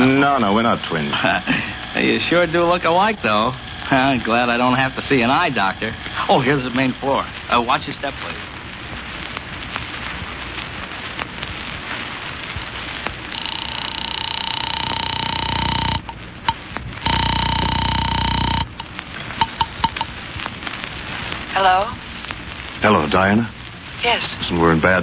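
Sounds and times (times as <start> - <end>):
old recording hiss: 0.0 - 25.0
telephone ringing: 13.3 - 16.2, 17.0 - 20.1
clicks: 14.8 - 20.2.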